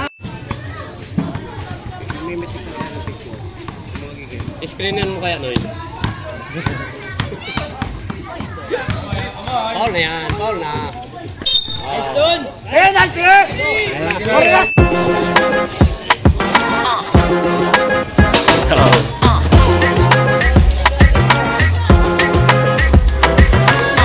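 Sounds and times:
crowd voices: 0.0 - 24.0
basketball bouncing on concrete: 0.2 - 11.0.

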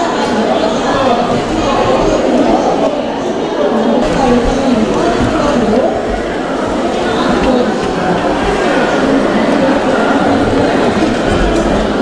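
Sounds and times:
dense crowd chatter: 0.0 - 12.0.

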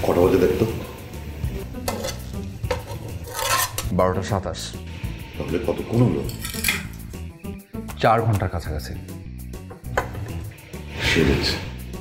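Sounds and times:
plates and cutlery clinking: 1.8 - 3.9, 6.2 - 7.1.

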